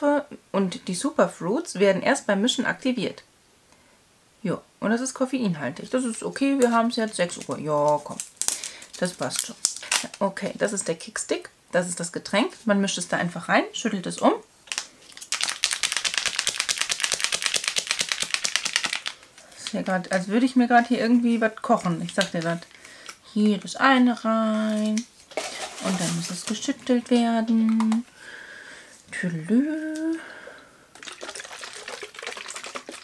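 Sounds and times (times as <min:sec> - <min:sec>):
granules rattling in plastic tube: 0:14.7 - 0:20.2, 0:23.4 - 0:28.0, 0:30.9 - 0:33.0
liquid sloshing in shaken bottle: 0:24.8 - 0:27.1, 0:30.9 - 0:33.0.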